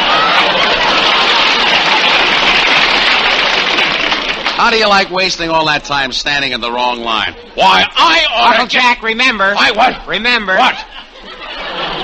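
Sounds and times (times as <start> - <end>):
audience laughing: 0.0 - 4.4, 9.8 - 12.0
studio audience applauding: 0.0 - 5.5.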